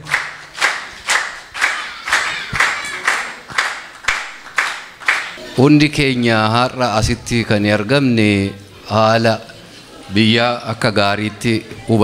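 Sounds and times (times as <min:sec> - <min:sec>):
audience clapping in rhythm: 0:00.0 - 0:05.4.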